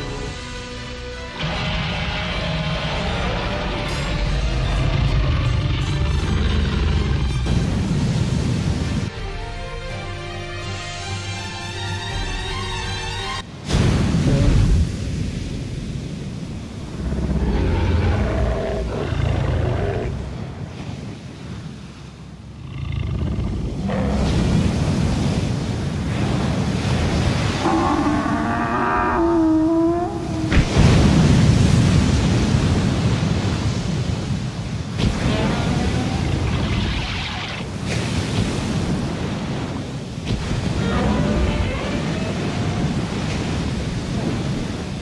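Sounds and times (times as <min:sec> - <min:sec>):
wind: 0:00.0 - 0:45.0
sea water churning and splashing: 0:01.4 - 0:09.3, 0:13.4 - 0:45.0
monster roar: 0:02.0 - 0:07.5, 0:17.0 - 0:20.3, 0:27.6 - 0:30.7
rushing water bursts: 0:13.4 - 0:45.0
surf: 0:13.4 - 0:45.0.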